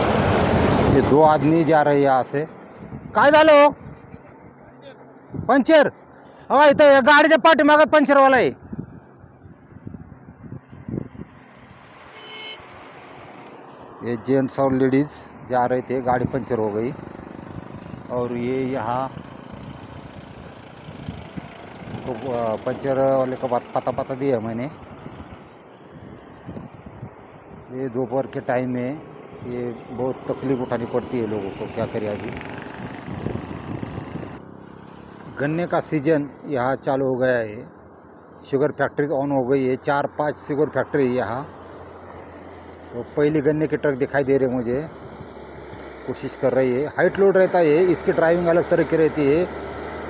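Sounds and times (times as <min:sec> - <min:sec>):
car driving past: 0:00.0 - 0:03.1, 0:11.0 - 0:14.4
highway traffic rumble: 0:00.0 - 0:50.0
low engine hum: 0:15.3 - 0:27.7.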